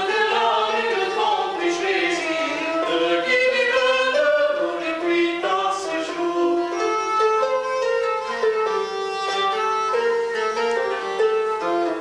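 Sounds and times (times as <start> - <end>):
bowed fiddle: 0.0 - 12.0
lute plucked: 0.0 - 12.0.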